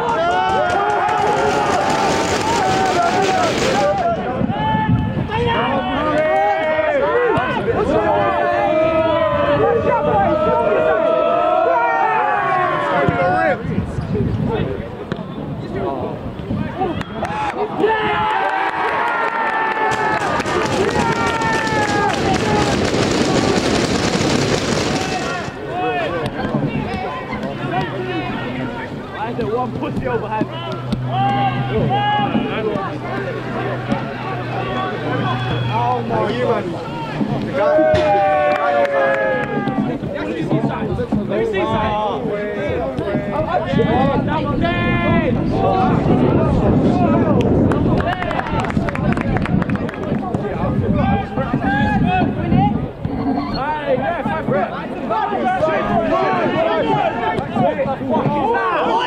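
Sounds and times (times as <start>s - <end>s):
crowd holding a long note: 0.0s - 13.6s, 17.2s - 29.7s, 30.4s - 40.4s
people shouting: 0.0s - 13.6s, 16.8s - 29.0s, 30.5s - 40.1s, 54.1s - 59.0s.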